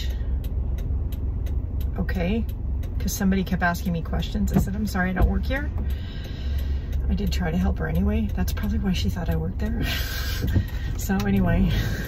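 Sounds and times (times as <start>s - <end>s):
car engine idling: 0.0s - 12.0s
faint ticks: 0.0s - 12.0s.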